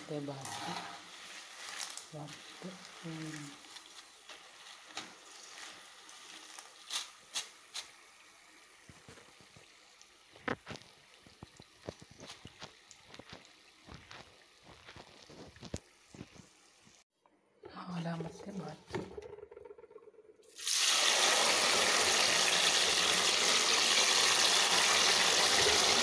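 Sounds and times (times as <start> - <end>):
food deep-frying in hot oil: 0.0 - 17.0, 20.5 - 26.0
oil crackling and clicking: 1.2 - 8.0, 8.9 - 17.0.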